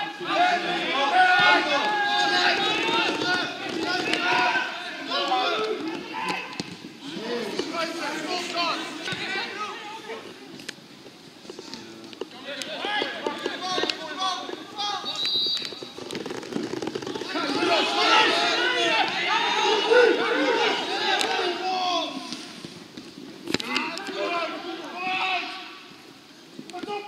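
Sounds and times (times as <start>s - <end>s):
men calling and talking: 0.0s - 27.0s.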